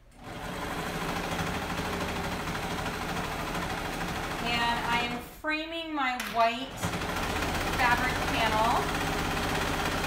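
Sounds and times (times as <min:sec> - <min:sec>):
overlock sewing machine stitching: 0:00.1 - 0:05.2, 0:06.7 - 0:10.0.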